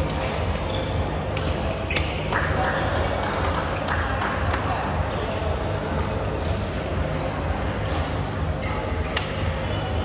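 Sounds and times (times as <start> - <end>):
people talking: 2.3 - 10.0
rackets hitting shuttlecocks: 7.8 - 8.2, 9.1 - 9.5.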